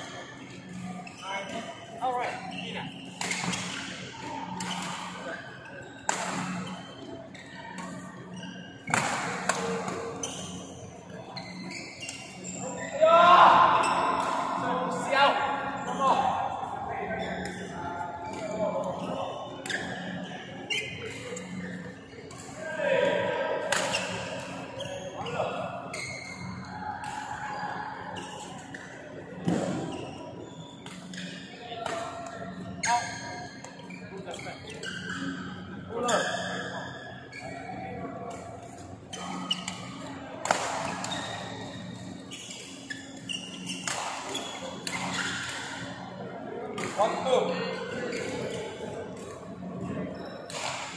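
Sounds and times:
racket striking shuttlecock: 43.8s - 45.7s.

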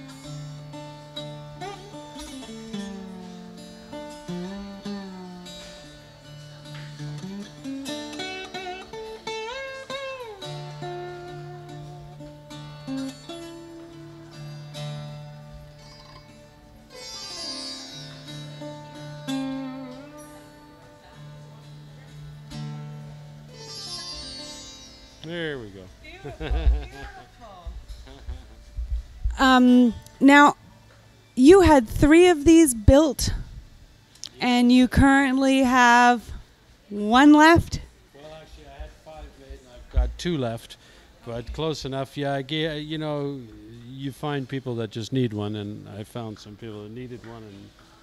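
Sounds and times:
slide guitar melody: 0.0s - 37.9s.

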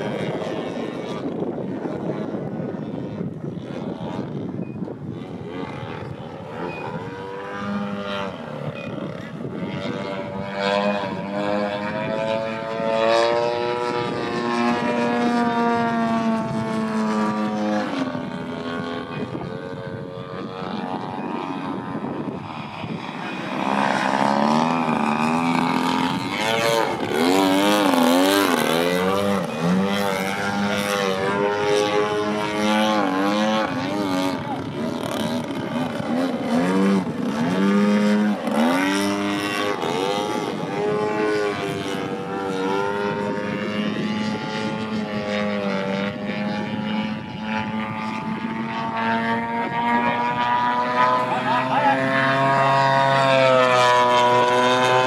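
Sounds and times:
model plane engine and propeller: 0.0s - 55.0s.

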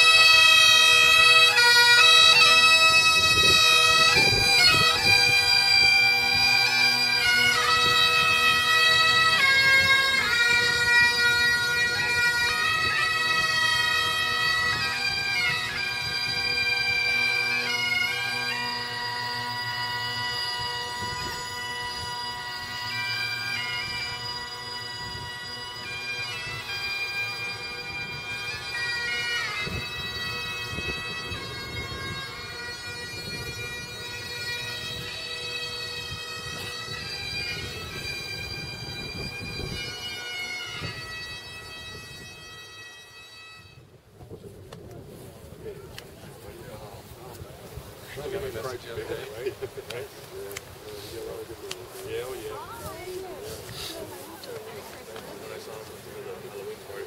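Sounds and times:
bagpipes playing slow tune: 0.0s - 44.0s, 44.8s - 57.0s.

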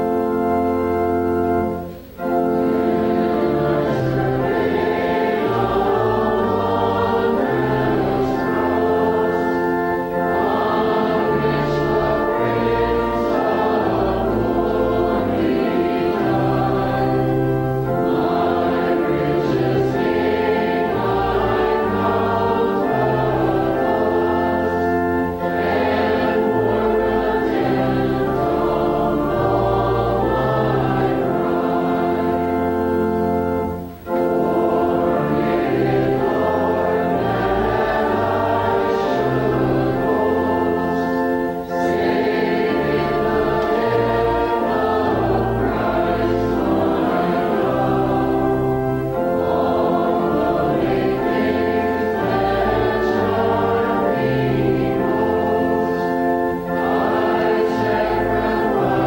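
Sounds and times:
church organ: 0.0s - 59.0s
congregation singing a hymn: 0.0s - 59.0s.

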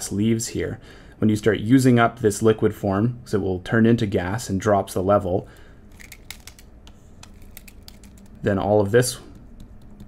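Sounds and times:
stylus tapping on drawing tablet: 9.3s - 10.0s.

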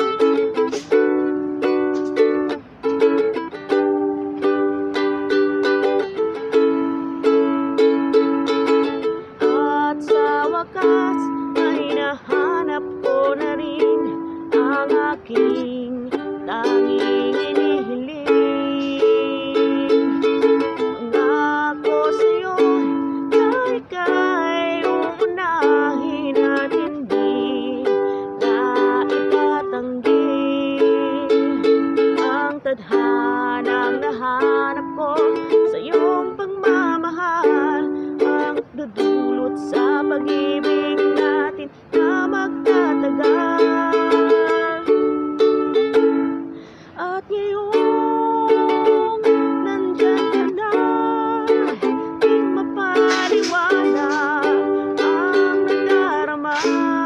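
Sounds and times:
strummed ukulele: 0.0s - 57.0s
woman singing: 0.0s - 57.0s.

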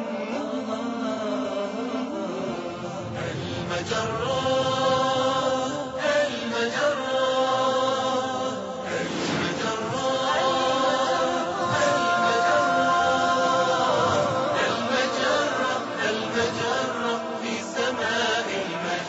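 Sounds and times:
voices singing long held notes: 0.0s - 19.0s
sweeping swishes: 8.8s - 19.0s.

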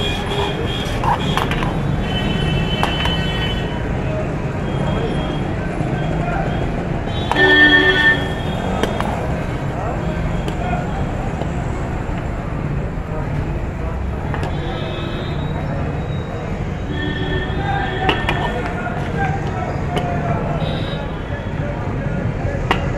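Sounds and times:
background chatter: 0.0s - 22.9s.

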